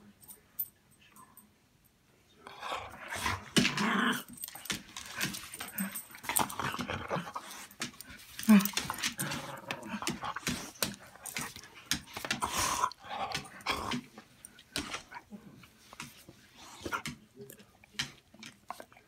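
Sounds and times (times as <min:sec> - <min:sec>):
dog growling and snarling: 0:02.5 - 0:04.4, 0:05.1 - 0:07.6, 0:08.4 - 0:11.0, 0:12.3 - 0:14.1.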